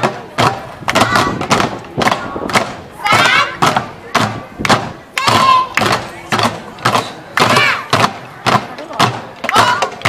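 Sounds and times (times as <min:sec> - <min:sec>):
voices shouting: 0:00.0 - 0:10.0.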